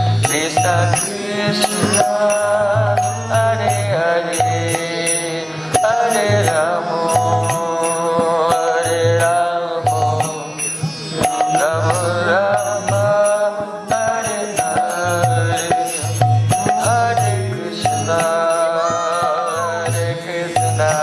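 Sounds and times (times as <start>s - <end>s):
man singing a devotional chant: 0.0s - 21.0s
percussion beat: 0.0s - 21.0s.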